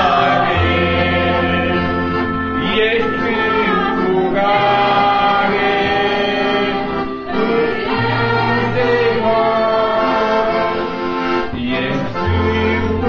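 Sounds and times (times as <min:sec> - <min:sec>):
group singing a hymn: 0:00.0 - 0:13.0
held instrumental accompaniment: 0:00.0 - 0:13.0.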